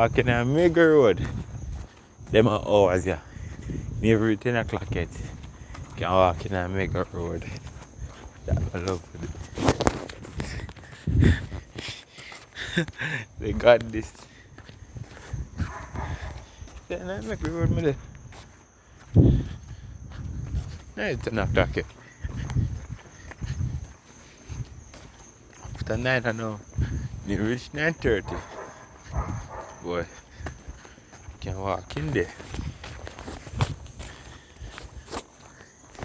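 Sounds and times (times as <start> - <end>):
footsteps walking: 0.1 - 36.0.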